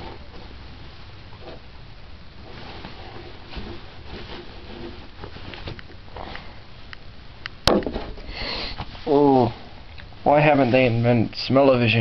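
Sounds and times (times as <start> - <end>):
handling noises: 2.4 - 6.6
person sniffing: 8.3 - 8.9.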